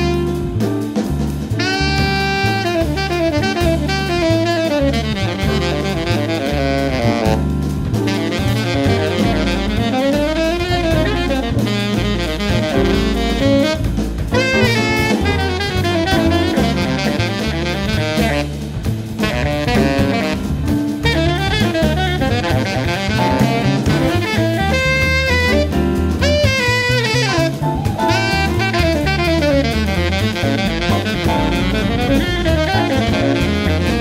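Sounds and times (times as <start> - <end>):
drum kit: 0.0 - 34.0
tenor saxophone solo: 0.0 - 34.0
upright bass: 0.0 - 34.0.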